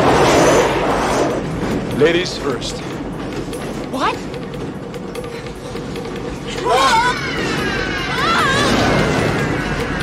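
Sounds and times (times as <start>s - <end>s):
film music: 0.0s - 10.0s
freight train rumble: 0.0s - 10.0s.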